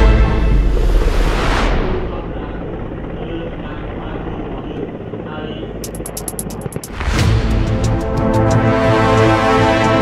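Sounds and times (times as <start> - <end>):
helicopter rotor and turbine: 0.0 - 10.0.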